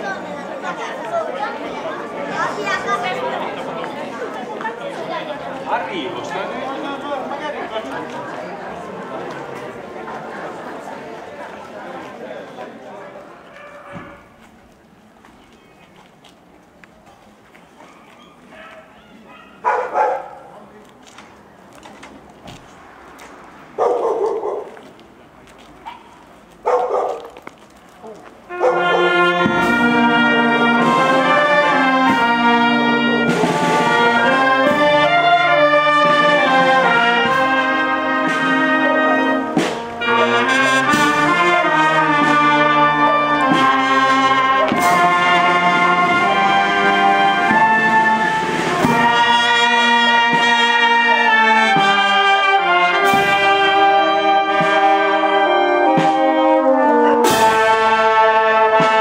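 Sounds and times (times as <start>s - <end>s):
marching brass band playing: 28.4s - 59.0s.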